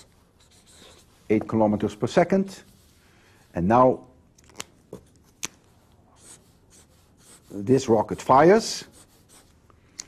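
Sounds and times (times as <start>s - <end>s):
drawing on writing surface: 0.0s - 1.4s, 6.1s - 8.0s, 8.8s - 9.6s.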